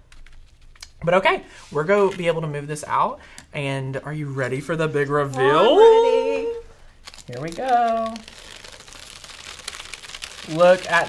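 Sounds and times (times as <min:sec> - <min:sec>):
paper crinkling as it peels: 0:06.9 - 0:11.0.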